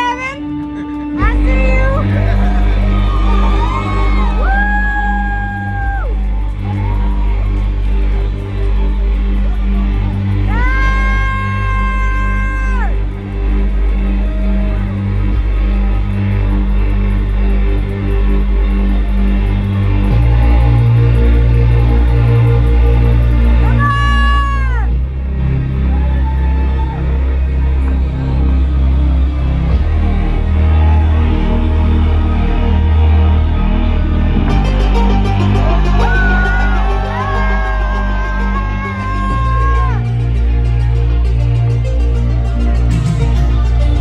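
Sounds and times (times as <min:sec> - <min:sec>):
low repeating bass notes: 0:00.0 - 0:44.0.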